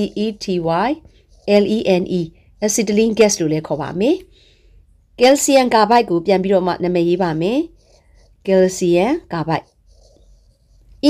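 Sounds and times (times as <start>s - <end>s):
stylus scratching on glass screen: 0.0s - 4.2s, 5.2s - 11.0s
woman speaking: 0.0s - 4.3s, 5.2s - 9.8s.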